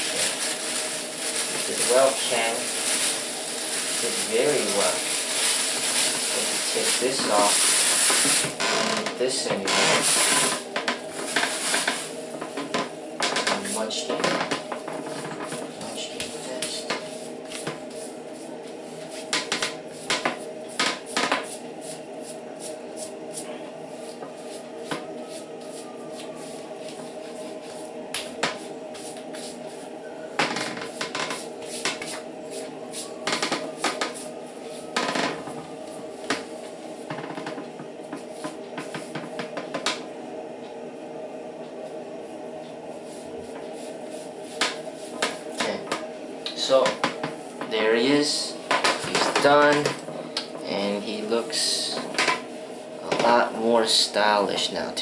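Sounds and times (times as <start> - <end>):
hair clipper buzzing: 7.4 - 9.1.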